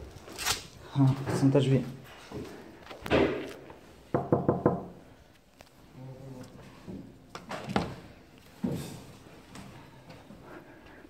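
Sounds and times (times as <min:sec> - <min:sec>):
knocking on wooden door: 0:04.1 - 0:05.0.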